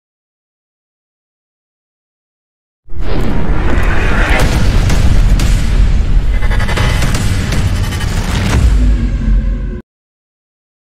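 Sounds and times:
deep booming explosion: 2.9s - 9.8s
music: 3.1s - 9.8s.

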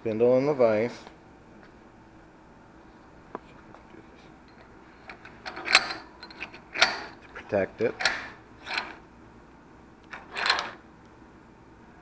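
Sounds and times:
bench vise ratcheting scrape: 5.0s - 7.2s, 7.8s - 9.0s, 10.1s - 10.8s.

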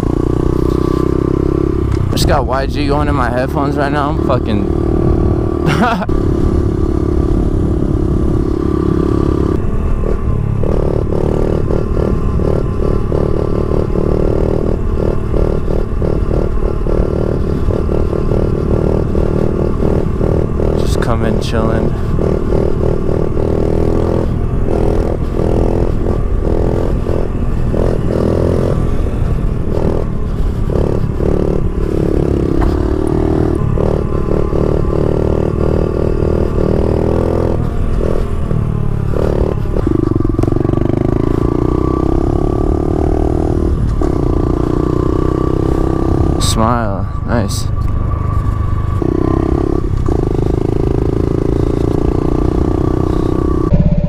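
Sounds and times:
small motorbike engine revving: 0.0s - 47.2s, 48.2s - 54.0s.

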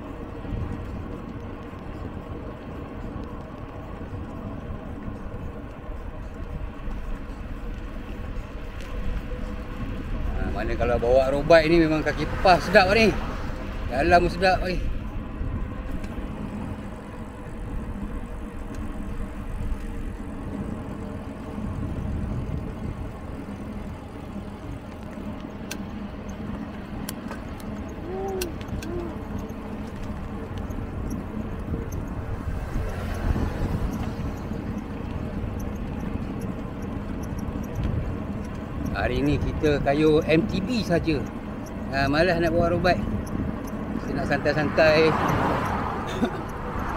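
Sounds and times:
bike tyres on asphalt: 0.0s - 46.9s
wind on microphone: 9.0s - 24.9s, 27.0s - 46.9s.

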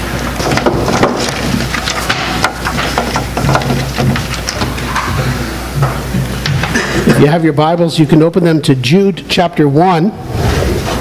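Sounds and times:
low electrical hum: 0.0s - 11.0s
knocks and clicks on wood: 0.4s - 5.1s.

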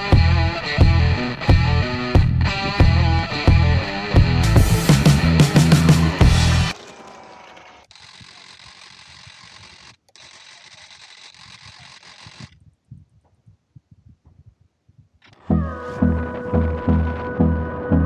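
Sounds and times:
loud music with steady beat: 0.2s - 6.7s.

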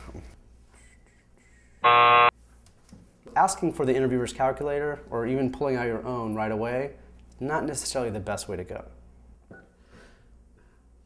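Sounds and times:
wrong-answer buzzer: 1.8s - 2.3s.

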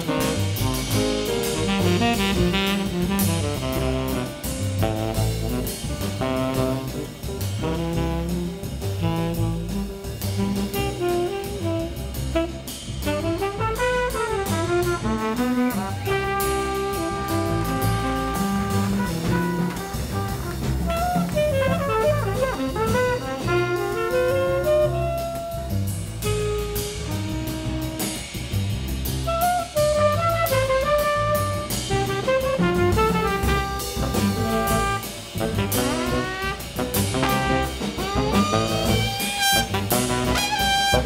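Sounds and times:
saxophone: 0.0s - 28.4s, 29.1s - 41.0s
double bass: 0.0s - 41.0s
drum kit with cymbals: 0.0s - 41.0s
trumpet: 0.0s - 41.0s.

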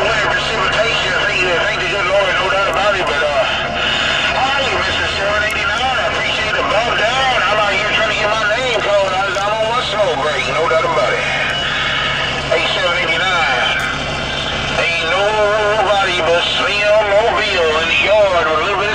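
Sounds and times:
garbled voices over radio speaker: 0.0s - 18.9s
low hum and noise: 0.0s - 18.9s.

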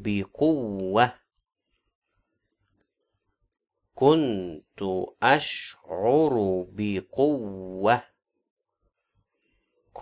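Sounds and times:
person speaking: 0.0s - 1.4s, 3.9s - 8.2s.

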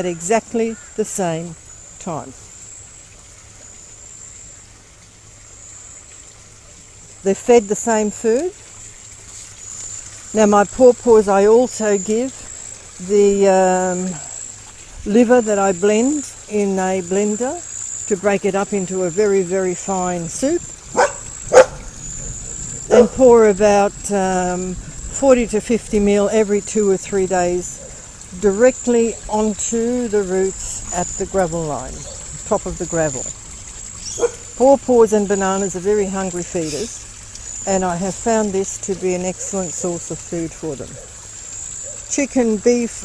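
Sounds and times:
low hiss: 0.0s - 43.0s
dog bark: 21.0s - 21.9s, 22.9s - 23.2s.

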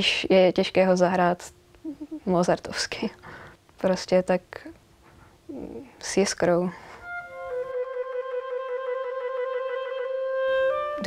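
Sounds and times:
solo clarinet: 6.9s - 11.0s.

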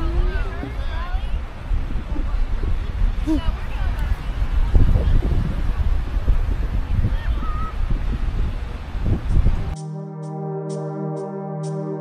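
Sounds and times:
wind buffeting microphone: 0.0s - 9.8s
brass music: 9.7s - 12.0s.

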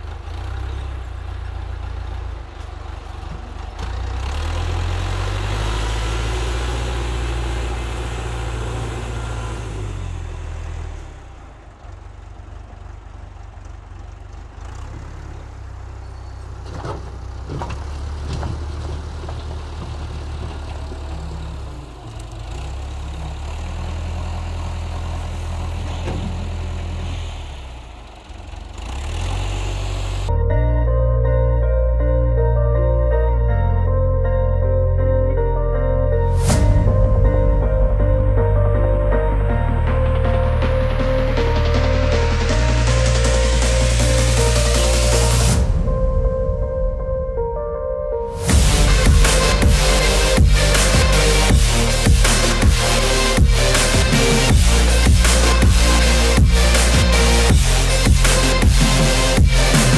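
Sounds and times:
diesel engine under load: 0.0s - 59.9s.

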